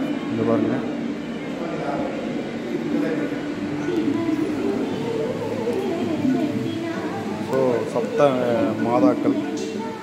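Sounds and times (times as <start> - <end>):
indistinct voices talking: 0.0 - 10.0
steady background noise: 0.0 - 10.0.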